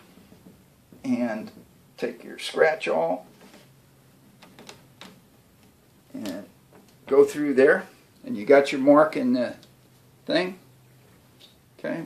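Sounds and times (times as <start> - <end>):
awl clicking through webbing: 4.4 - 7.1.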